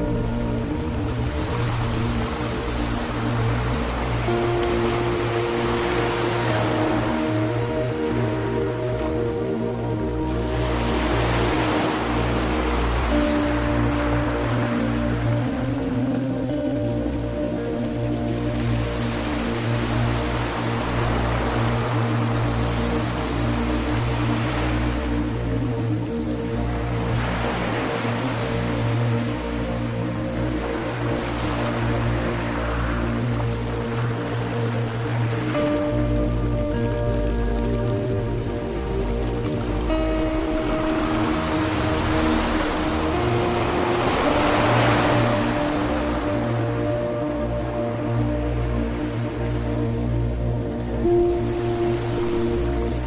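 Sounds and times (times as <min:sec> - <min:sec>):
ambient synth pads: 0:00.0 - 0:53.0
low bass drone: 0:00.0 - 0:53.0
ocean surf washes: 0:00.0 - 0:53.0.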